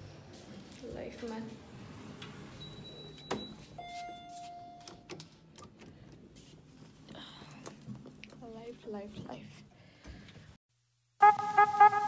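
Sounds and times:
lower elevator beep: 0:02.5 - 0:05.0
high elevator beep: 0:02.6 - 0:05.0.

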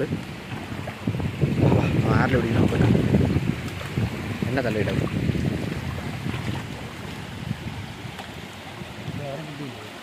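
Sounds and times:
stream running over rocks: 0:00.0 - 0:10.0
wind rumbling on microphone: 0:00.0 - 0:10.0.

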